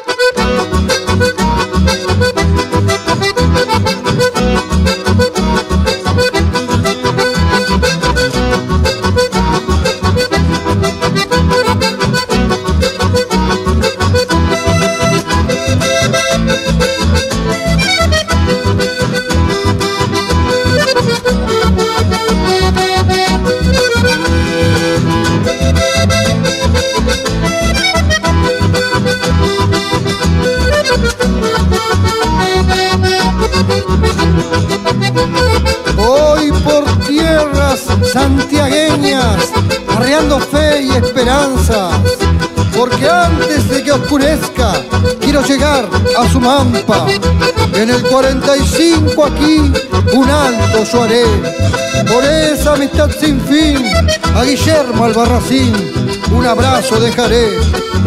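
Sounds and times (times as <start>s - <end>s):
acoustic bass guitar: 0.0s - 58.0s
acoustic guitars: 0.0s - 58.0s
button accordions playing melody: 0.0s - 58.0s.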